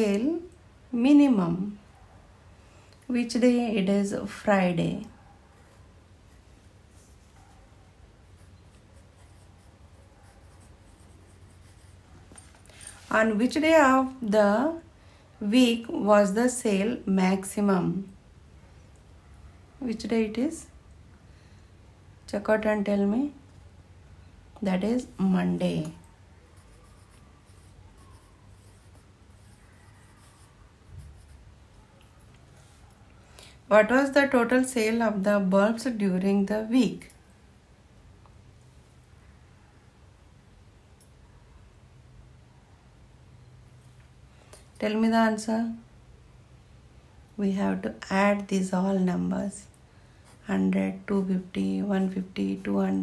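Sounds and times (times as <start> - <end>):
pencil scratching on paper: 8.2 - 13.4, 26.5 - 31.5.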